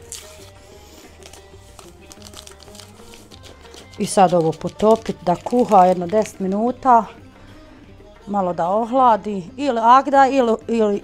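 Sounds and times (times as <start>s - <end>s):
soft background music: 0.0s - 11.0s
paper sachet crinkling: 1.2s - 6.2s.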